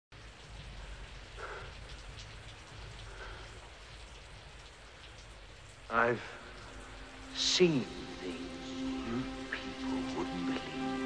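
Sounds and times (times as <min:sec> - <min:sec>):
steady rain falling: 0:00.1 - 0:11.0.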